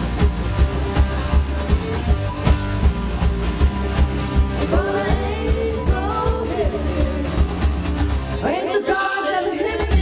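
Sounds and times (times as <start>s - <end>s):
rock band playing: 0.0s - 10.0s
person singing: 4.6s - 7.7s.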